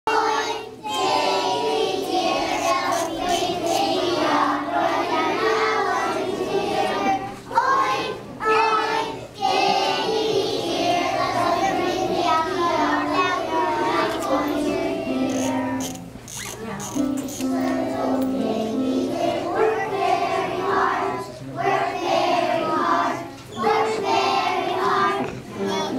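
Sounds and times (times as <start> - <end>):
young children singing: 0.1 - 16.1, 16.9 - 25.9.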